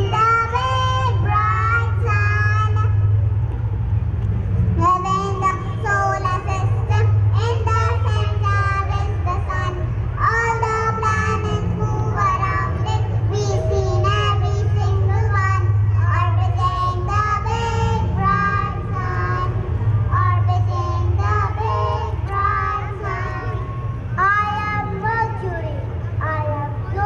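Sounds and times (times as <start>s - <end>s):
child singing: 0.0s - 3.0s, 4.8s - 27.0s
steady low hum: 0.0s - 27.0s.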